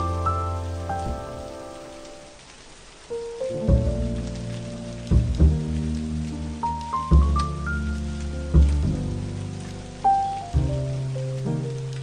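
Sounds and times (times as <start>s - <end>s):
soft jazz piano: 0.0s - 2.4s, 3.0s - 12.0s
steady rain falling: 0.0s - 12.0s.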